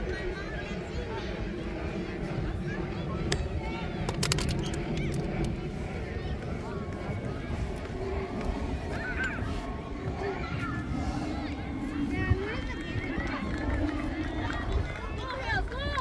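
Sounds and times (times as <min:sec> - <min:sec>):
indistinct voices: 0:00.0 - 0:16.0
wind rumble on microphone: 0:00.0 - 0:16.0
sharp clicks: 0:04.0 - 0:05.6.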